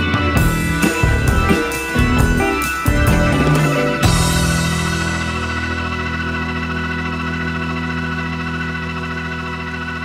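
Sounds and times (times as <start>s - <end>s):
organ chord: 0.0s - 10.0s.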